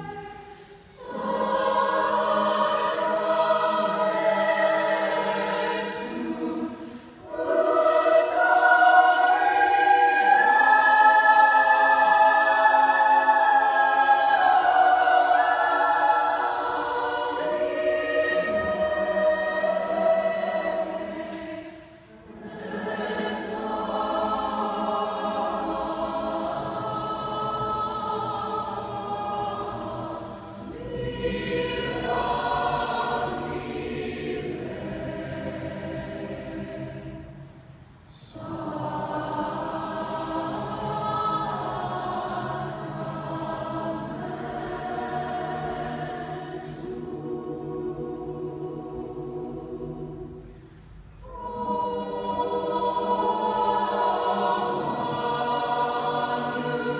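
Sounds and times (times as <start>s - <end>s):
choir singing a cappella: 0.0s - 56.9s.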